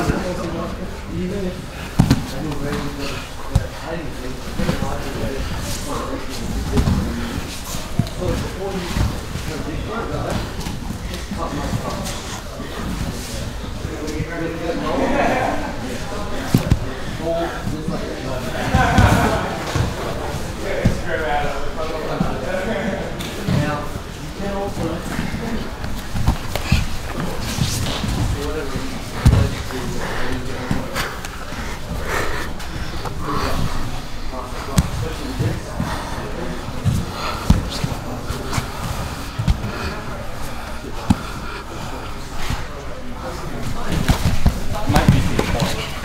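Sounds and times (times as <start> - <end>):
voices echoing in a hall: 0.0 - 46.0.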